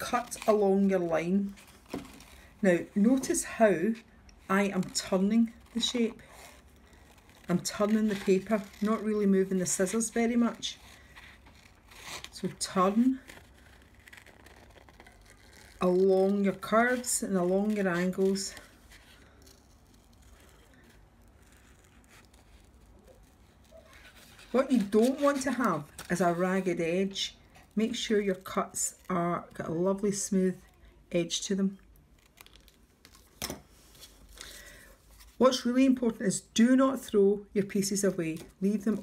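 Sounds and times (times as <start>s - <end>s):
person speaking: 0.0s - 1.6s, 24.5s - 31.8s
paper rustling: 4.8s - 29.5s.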